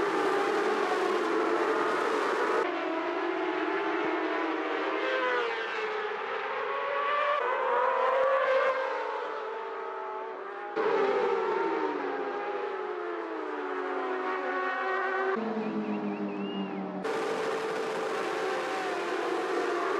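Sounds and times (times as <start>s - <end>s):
racing motorcycles revving: 14.0s - 19.9s.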